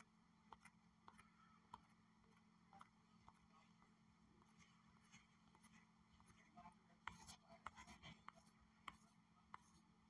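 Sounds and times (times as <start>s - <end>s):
faint low hum: 0.0s - 10.0s
fingers tapping phone screen: 0.0s - 10.0s.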